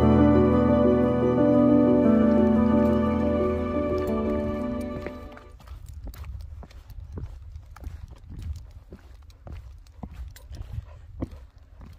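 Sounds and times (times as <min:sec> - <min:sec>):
soft background music: 0:00.0 - 0:05.5
boots stepping on rocky path: 0:03.9 - 0:11.9
wind rumble on microphone: 0:04.6 - 0:11.9.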